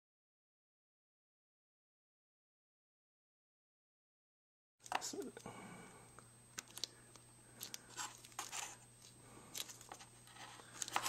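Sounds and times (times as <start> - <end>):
faint steady hum: 4.8 - 11.0.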